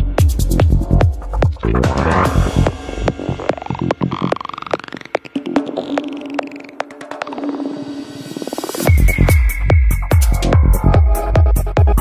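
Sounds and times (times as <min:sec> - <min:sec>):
kick drum: 0:00.0 - 0:04.4, 0:08.9 - 0:12.0
low throbbing bass: 0:00.0 - 0:04.7, 0:08.9 - 0:12.0.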